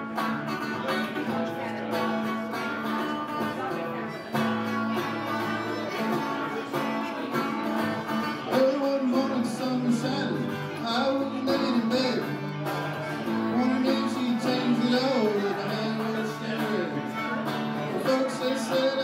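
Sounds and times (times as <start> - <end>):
guitar strumming: 0.0 - 19.0.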